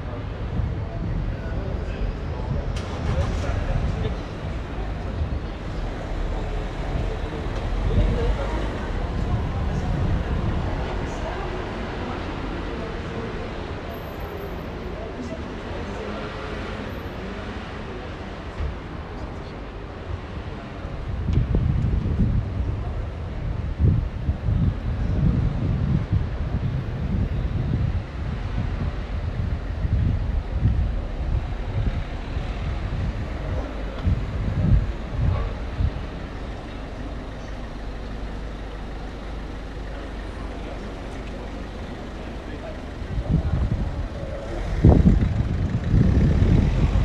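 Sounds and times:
wind buffeting microphone: 0.0s - 13.2s, 20.1s - 47.0s
passers-by talking: 0.0s - 47.0s
traffic: 0.0s - 47.0s.

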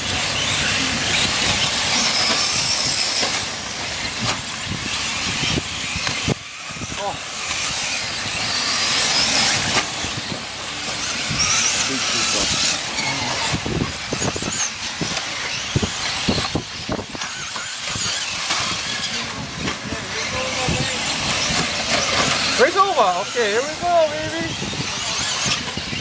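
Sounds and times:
rc truck motor whine: 0.0s - 26.0s.

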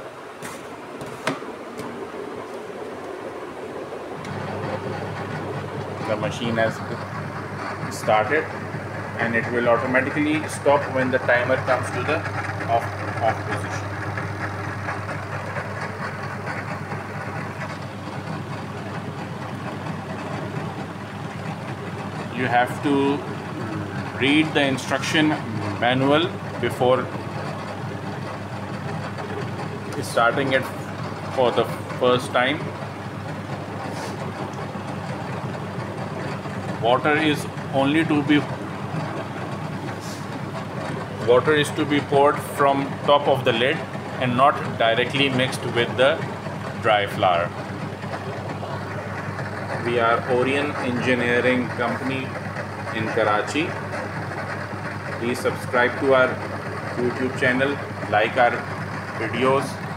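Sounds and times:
dough kneader motor humming: 0.0s - 59.9s.

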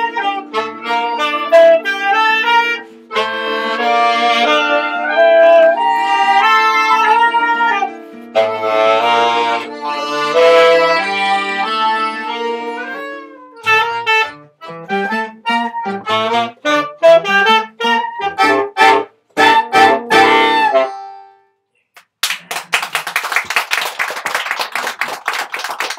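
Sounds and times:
saxophones accordion and guitar playing: 0.0s - 21.6s
audience applauding: 22.1s - 25.9s.

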